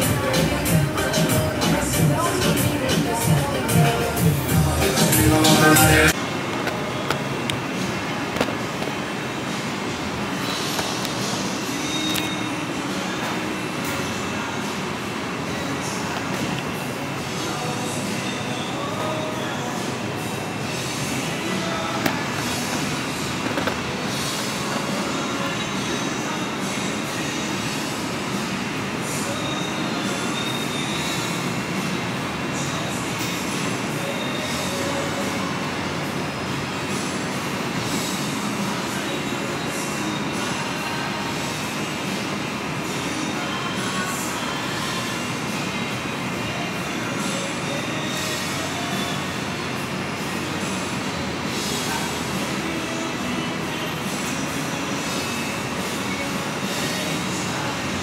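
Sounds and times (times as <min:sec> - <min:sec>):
rushing room noise: 0:00.0 - 0:58.0.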